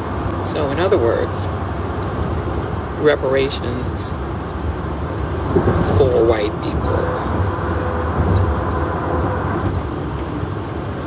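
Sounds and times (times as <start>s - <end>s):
car cabin rumble: 5.2s - 10.4s.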